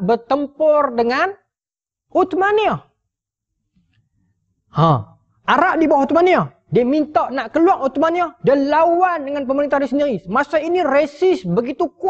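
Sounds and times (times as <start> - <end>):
man saying ha: 4.8 - 5.1.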